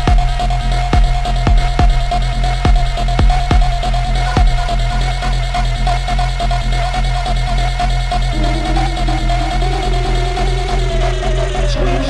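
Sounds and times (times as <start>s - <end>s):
deep sub-bass: 0.0s - 12.0s
ticking electronic percussion: 0.0s - 12.0s
held synth tone: 8.3s - 12.0s.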